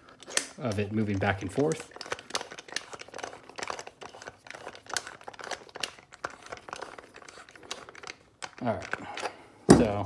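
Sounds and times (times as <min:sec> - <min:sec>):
rustling of handled parts: 0:00.0 - 0:10.0.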